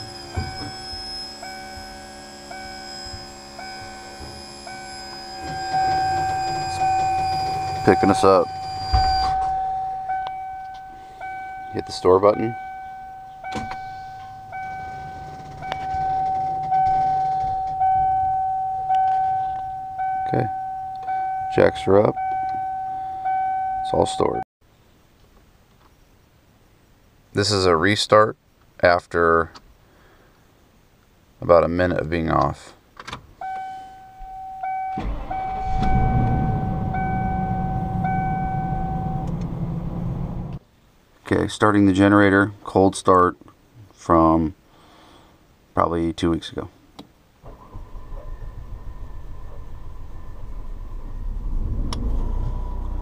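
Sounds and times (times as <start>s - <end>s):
motorhome engine starting and idling: 0.0s - 24.3s, 34.2s - 40.6s, 47.4s - 53.0s
electronic warning chime: 0.0s - 24.4s, 33.4s - 40.2s
low steady hum: 0.0s - 53.0s.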